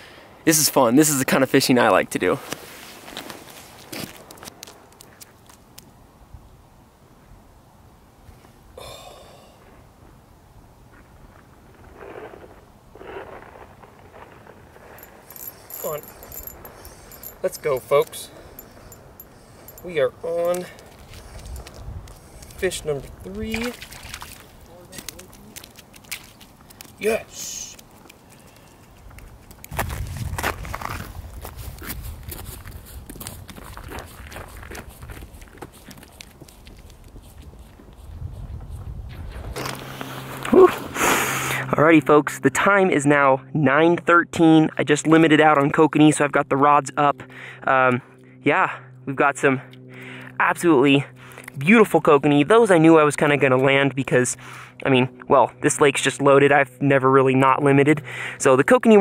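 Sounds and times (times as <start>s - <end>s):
rustling and light clicking: 14.9s - 19.8s, 24.2s - 27.0s.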